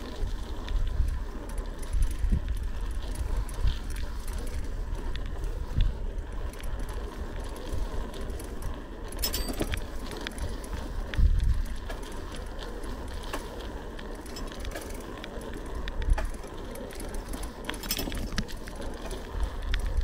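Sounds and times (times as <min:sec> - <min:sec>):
bicycle parts rattling: 0:00.0 - 0:05.5, 0:06.1 - 0:20.0
bicycle rolling on pavement: 0:00.0 - 0:20.0.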